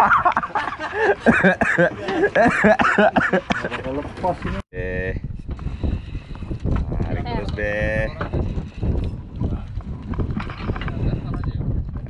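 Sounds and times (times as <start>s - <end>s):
wind rumbling on microphone: 4.0s - 12.0s.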